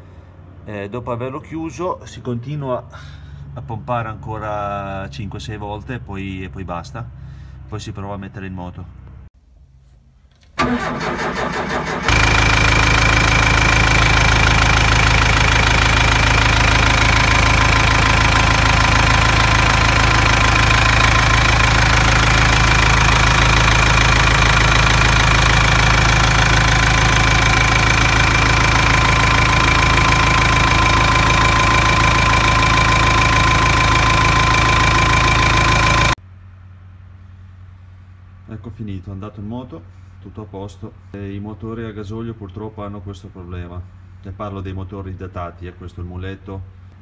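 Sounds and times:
diesel engine idling: 10.6s - 36.2s.

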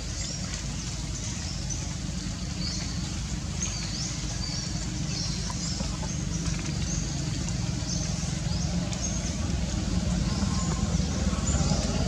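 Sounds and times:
small birds chirping: 0.0s - 12.0s
steady low rumble: 0.0s - 12.0s.

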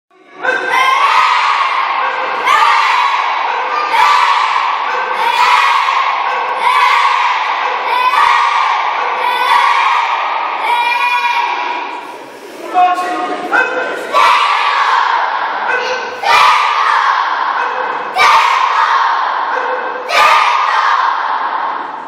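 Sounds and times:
children shouting in unison: 0.4s - 12.1s, 13.5s - 22.0s.

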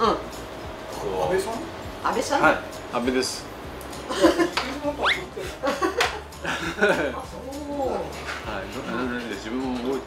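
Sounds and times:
men laughing: 4.0s - 7.4s.

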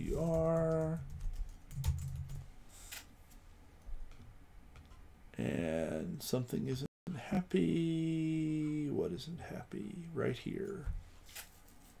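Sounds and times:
computer keyboard typing: 0.0s - 2.4s.

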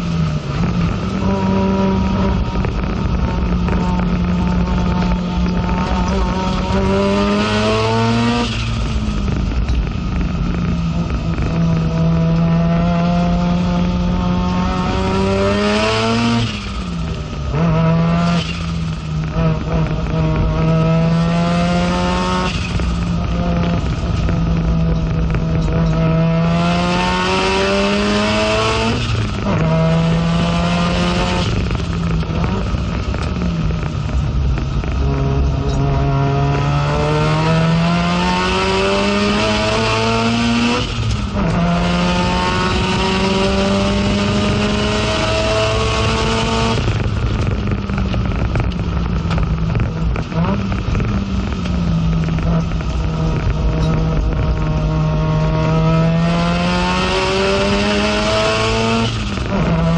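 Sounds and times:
rotary engine revving: 0.0s - 59.9s.

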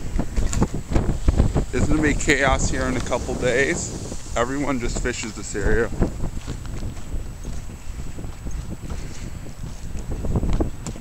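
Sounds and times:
wind rumbling on microphone: 0.0s - 11.0s
footsteps on frozen rocky shore: 0.2s - 11.0s.

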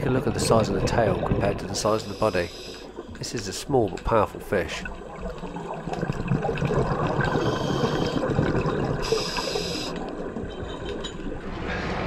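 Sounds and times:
bubbles gurgling underwater: 0.0s - 2.2s, 2.8s - 11.5s
regulator inhale hiss: 2.0s - 2.9s, 9.0s - 10.0s.

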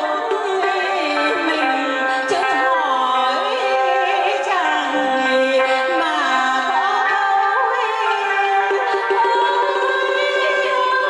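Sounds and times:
instrumental accompaniment: 0.0s - 11.0s
woman singing into a microphone: 0.0s - 11.0s.

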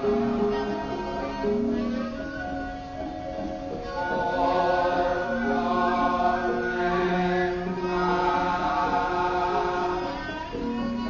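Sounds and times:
gamelan music: 0.0s - 11.0s
voices singing slow chant: 3.8s - 11.0s.

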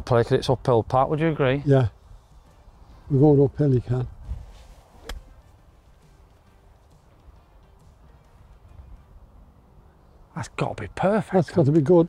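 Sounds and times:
faint wind: 0.0s - 12.0s
quiet background music: 0.0s - 12.0s
golf club striking ball: 5.0s - 5.5s.

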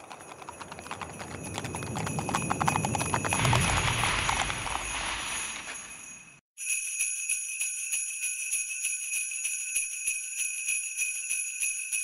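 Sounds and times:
horse hooves clip-clopping: 0.0s - 6.2s
bells ringing: 0.0s - 12.0s.

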